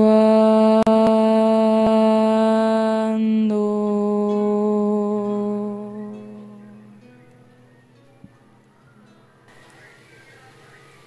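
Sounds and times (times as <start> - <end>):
woman singing: 0.0 - 7.2.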